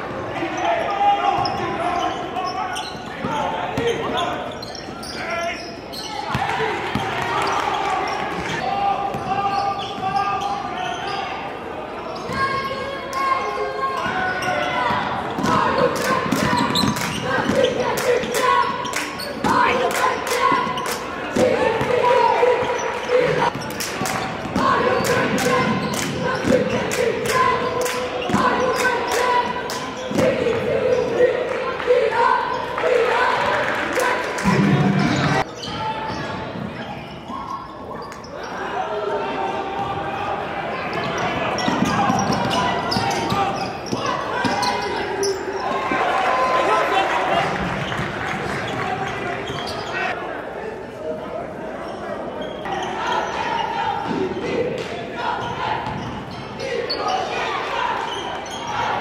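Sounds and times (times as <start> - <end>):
indistinct voices: 0.0 - 59.0.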